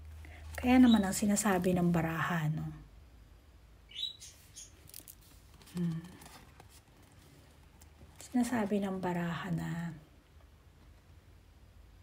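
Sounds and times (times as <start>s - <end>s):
high-pitched chirp: 3.9s - 4.8s.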